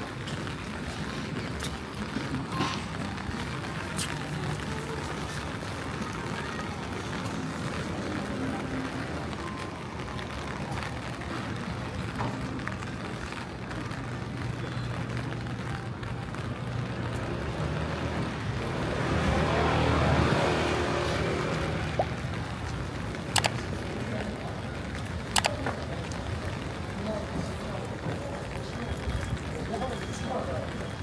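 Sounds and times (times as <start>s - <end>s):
vehicle engine passing: 17.2s - 22.4s.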